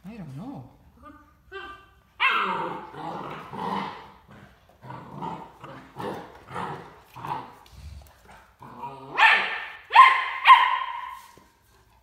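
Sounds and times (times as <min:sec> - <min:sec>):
dogs growling and barking in play: 0:00.9 - 0:12.0.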